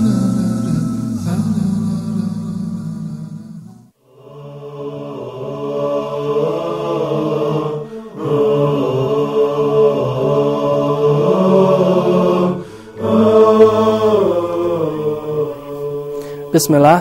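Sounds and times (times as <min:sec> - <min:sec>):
chant-style sung theme tune: 0:00.0 - 0:17.0.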